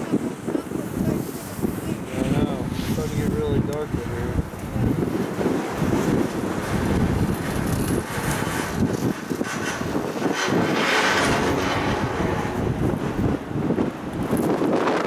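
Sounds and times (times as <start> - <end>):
wind buffeting microphone: 0.0 - 15.0.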